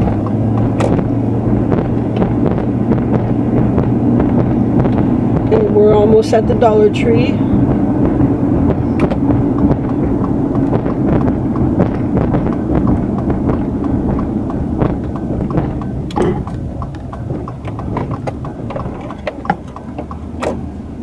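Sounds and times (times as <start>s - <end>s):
tyre and engine drone: 0.0s - 21.0s
light ticks and knocks: 9.0s - 20.7s.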